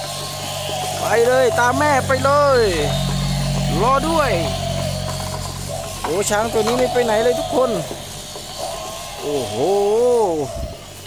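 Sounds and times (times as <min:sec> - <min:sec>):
toy motor and gears humming: 0:00.0 - 0:11.0.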